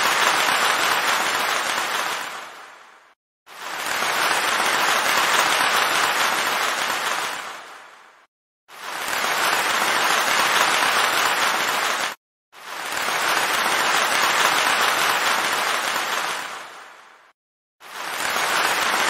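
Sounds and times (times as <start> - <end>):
crowd applause: 0.0 - 2.6, 3.6 - 7.7, 8.9 - 12.2, 12.8 - 16.7.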